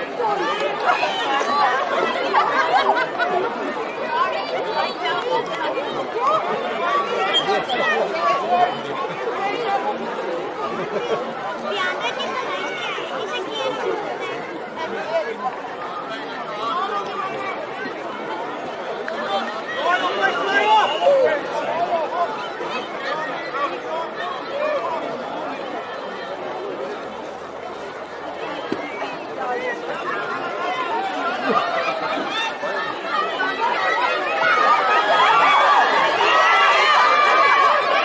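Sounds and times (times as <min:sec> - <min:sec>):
many voices chattering: 0:00.0 - 0:38.0.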